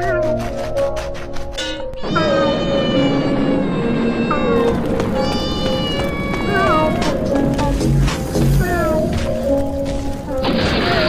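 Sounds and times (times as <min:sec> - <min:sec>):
background music: 0:00.0 - 0:11.0
cat meowing: 0:02.0 - 0:07.4.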